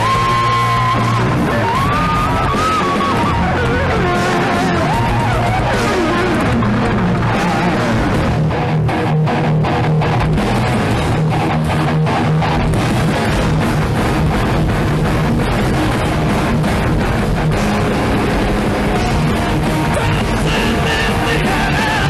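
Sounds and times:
bass guitar: 0.0s - 22.0s
distorted electric guitars: 0.0s - 22.0s
drum kit: 0.0s - 22.0s.

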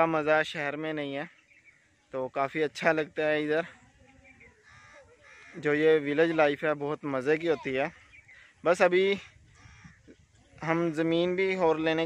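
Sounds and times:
man talking: 0.0s - 1.3s, 2.2s - 3.8s, 5.6s - 8.0s, 8.6s - 9.4s, 10.6s - 12.0s
bird calling faintly: 3.1s - 6.6s, 7.3s - 11.8s.

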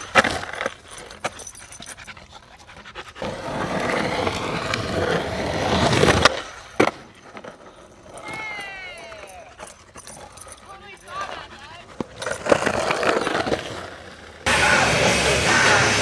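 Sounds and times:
skateboard wheels rolling on dirt: 0.0s - 1.5s, 2.5s - 10.3s, 11.1s - 16.0s
skateboard clack: 3.2s - 8.5s.

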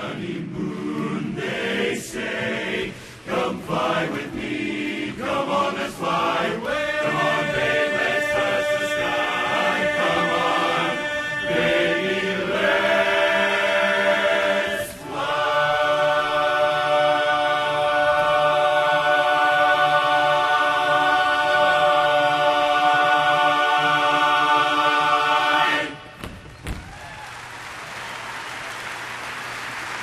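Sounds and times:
men's chorus singing a cappella: 0.0s - 26.1s.

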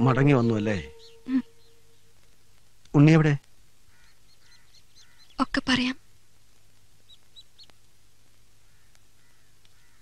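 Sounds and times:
small bird chirping: 0.0s - 6.1s, 6.9s - 7.9s
faint low background hum: 0.0s - 10.0s.

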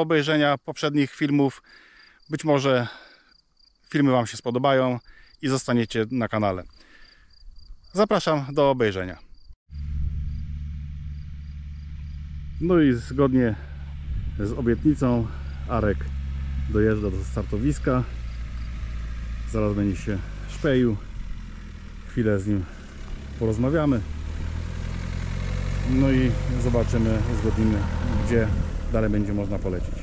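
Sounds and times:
crickets chirping: 0.2s - 29.5s
van engine humming: 9.7s - 30.0s.

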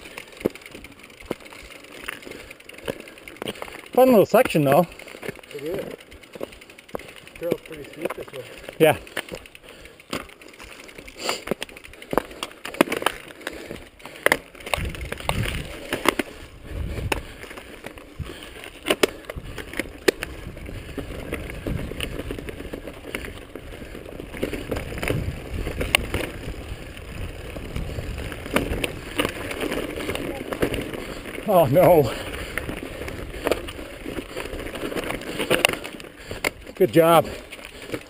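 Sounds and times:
mountain bike rattling over rocks: 0.0s - 38.0s
wind rumble on microphone: 14.7s - 15.8s, 16.5s - 17.4s, 20.3s - 22.6s, 24.6s - 29.2s.

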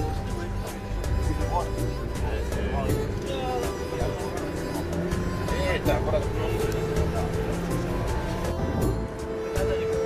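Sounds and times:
background music: 0.0s - 10.0s
minibus rumbling on road: 0.0s - 10.0s
voices: 0.0s - 10.0s.

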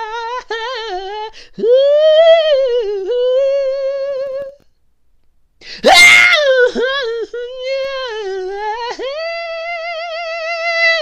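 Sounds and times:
woman singing unaccompanied: 0.0s - 4.6s, 6.3s - 11.0s.

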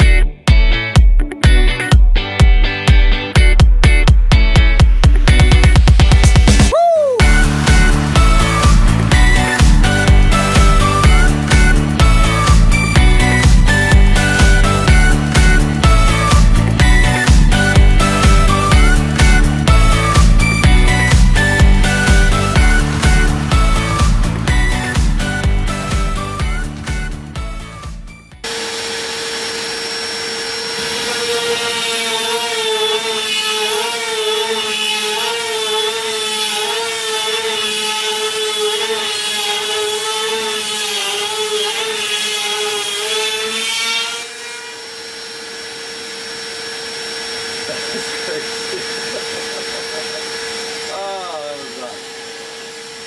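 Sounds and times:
router bit rasping through wood: 7.2s - 26.9s, 28.4s - 53.0s
router spindle whining: 7.2s - 53.0s.

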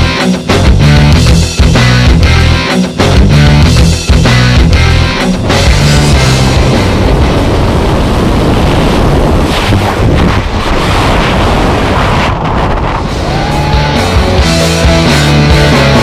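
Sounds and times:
rock music: 0.0s - 8.3s, 13.0s - 16.0s
wind rushing across microphone: 6.4s - 13.9s.

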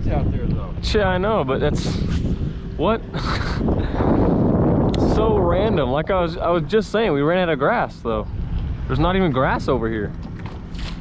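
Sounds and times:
wind noise on microphone: 0.0s - 11.0s
man laughing: 3.0s - 4.2s.

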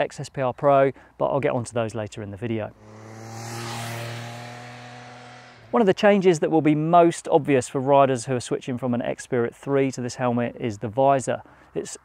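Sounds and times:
motorcycle engine running: 2.8s - 5.7s
wind rushing: 2.8s - 5.7s.

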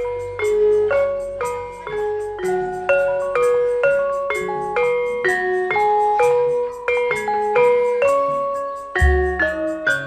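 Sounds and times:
gamelan metallophone melody: 0.0s - 10.0s.

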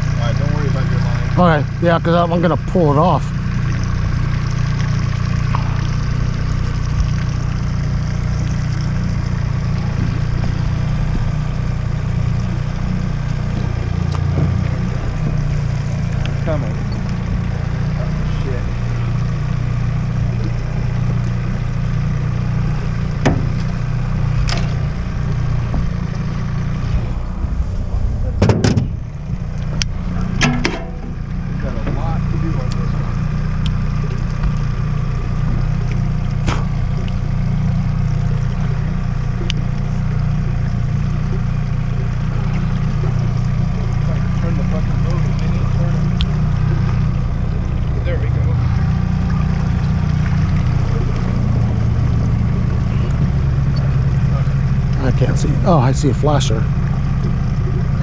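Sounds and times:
outboard motor running: 0.0s - 58.0s
water churning: 0.0s - 58.0s.

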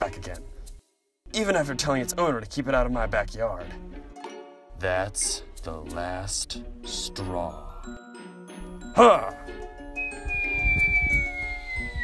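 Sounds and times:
background music: 0.0s - 12.0s
cartoon whistle falling in pitch: 10.0s - 12.0s.

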